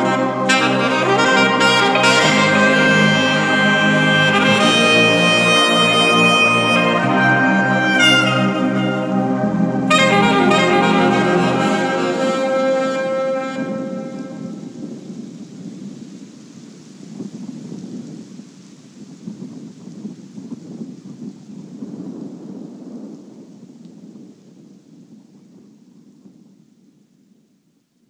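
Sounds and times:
sustained song notes: 0.0 - 14.8
rain hiss: 0.0 - 25.7.

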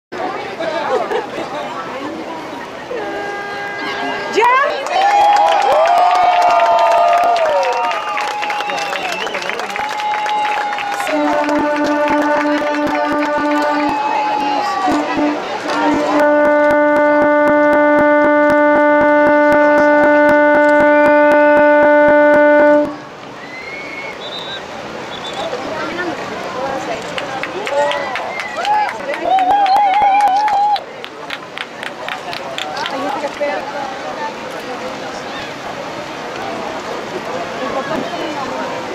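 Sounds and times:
horn steady note: 3.1 - 4.4, 11.0 - 23.0
crowd shouting and cheering: 3.6 - 22.1, 26.7 - 33.5.

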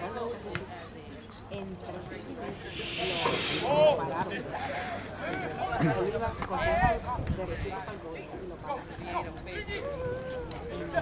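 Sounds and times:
drawn-out hiss: 2.5 - 3.8.

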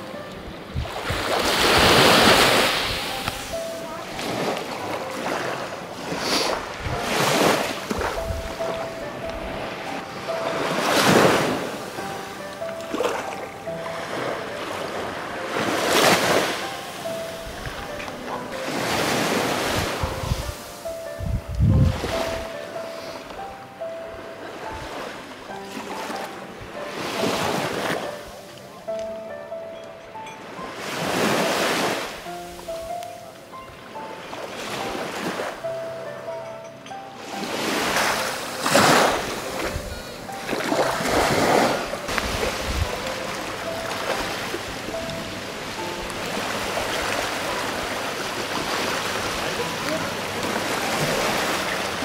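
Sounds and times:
sea waves washing onto shore: 0.0 - 23.5, 24.4 - 28.5, 30.4 - 33.3, 37.2 - 52.0
faint music: 0.0 - 52.0.

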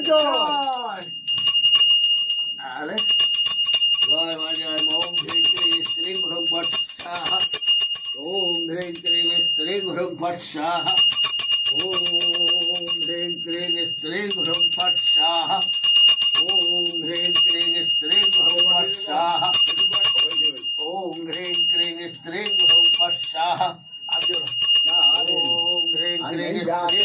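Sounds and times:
hand bell rung rapidly: 0.0 - 27.0
man chanting: 4.1 - 7.5, 8.2 - 11.0, 11.8 - 15.7, 16.4 - 27.0.

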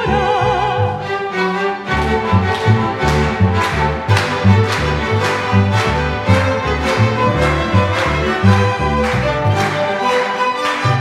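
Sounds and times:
string orchestra playing: 0.0 - 11.0.

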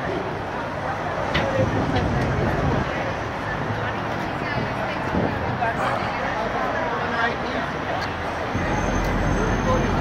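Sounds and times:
faint chatter: 0.0 - 10.0
vehicle engine rumble: 0.0 - 10.0.

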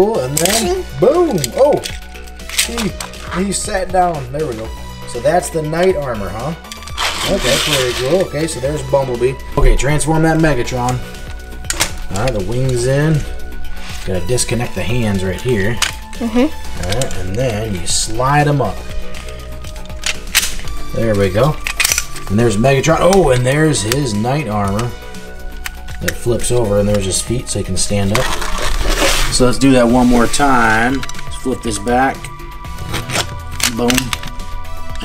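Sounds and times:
background music: 0.0 - 35.0
plastic toy snapping: 19.9 - 20.7, 21.6 - 22.2
plastic toy parts clicking: 21.6 - 22.2.

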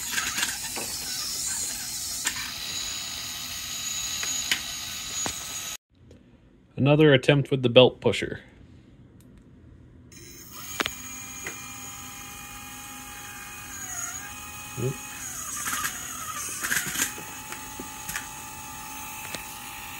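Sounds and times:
small motor whining: 0.0 - 5.8, 10.1 - 19.9.

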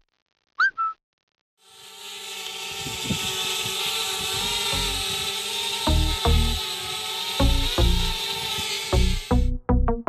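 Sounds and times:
steady whirring hum: 1.7 - 9.3.

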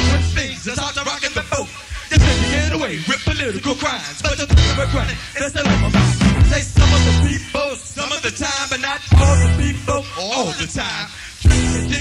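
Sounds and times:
live band playing: 0.0 - 7.7, 9.1 - 9.9, 11.5 - 12.0
vocalist rapping: 0.0 - 12.0.

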